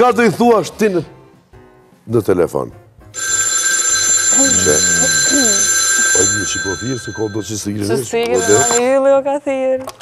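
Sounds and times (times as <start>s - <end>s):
telephone bell ringing: 3.2s - 9.0s.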